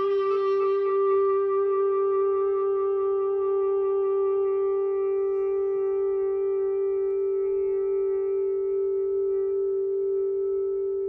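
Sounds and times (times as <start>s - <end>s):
long clarinet note: 0.0s - 11.0s.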